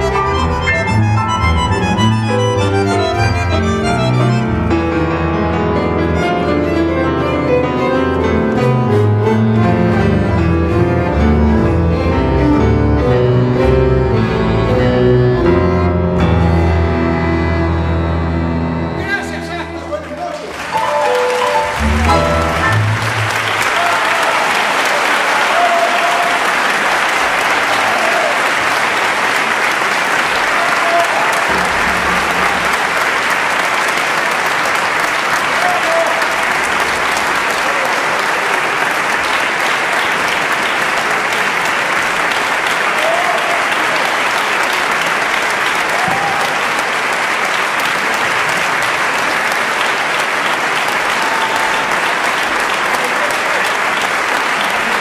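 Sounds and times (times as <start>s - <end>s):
audience applauding: 0.0s - 4.8s, 19.0s - 55.0s.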